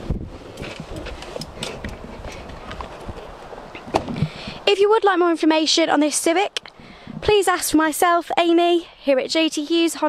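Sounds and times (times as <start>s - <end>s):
wind rumble on microphone: 0.0s - 4.7s, 6.8s - 7.9s
footsteps and camera handling: 0.6s - 4.3s.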